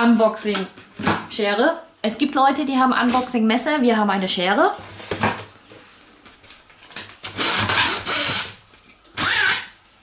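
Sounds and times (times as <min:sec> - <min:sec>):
blade slicing packing tape: 0:09.2 - 0:09.8.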